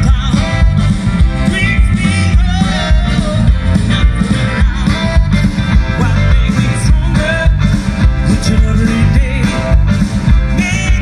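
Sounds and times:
live rock band playing: 0:00.0 - 0:11.0
person singing: 0:00.0 - 0:11.0.

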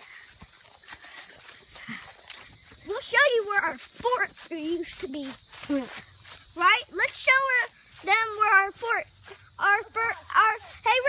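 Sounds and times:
footsteps through grass: 0:00.0 - 0:11.0
insects chirring: 0:00.0 - 0:11.0.

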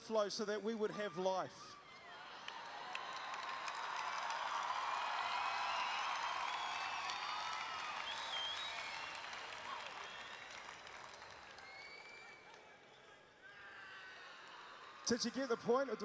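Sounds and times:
audience applauding: 0:02.1 - 0:12.8.

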